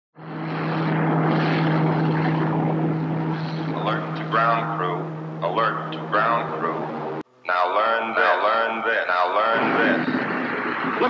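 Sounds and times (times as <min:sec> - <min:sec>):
low even hum: 0:00.2 - 0:11.0
rocket engine roar: 0:00.2 - 0:11.0.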